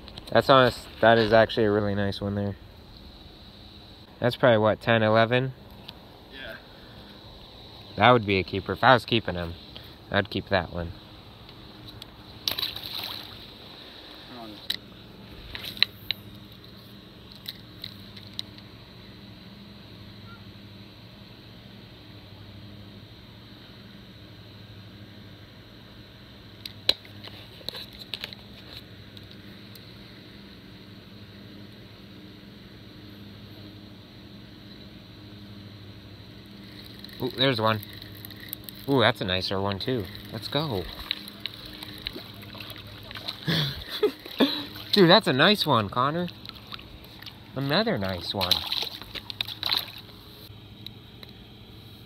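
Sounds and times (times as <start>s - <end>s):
low outdoor hum: 0.0s - 52.0s
fish splashing into water: 12.4s - 13.6s, 40.0s - 45.3s, 46.2s - 50.2s.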